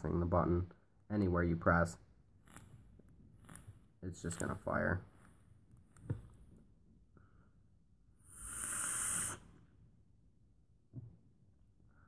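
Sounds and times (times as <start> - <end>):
breathy hiss of vapour exhaled: 8.2 - 9.6
faint short breath: 8.2 - 9.6.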